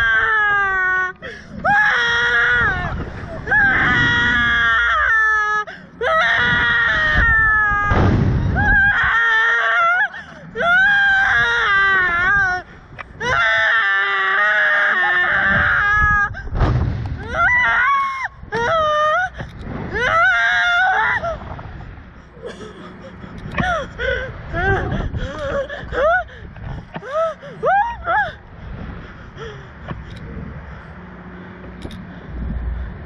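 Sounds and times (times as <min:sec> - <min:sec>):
women screaming: 0:00.0 - 0:16.5, 0:17.2 - 0:21.4, 0:23.5 - 0:28.4
wind buffeting microphone: 0:01.2 - 0:09.4, 0:10.2 - 0:14.2, 0:15.2 - 0:33.0.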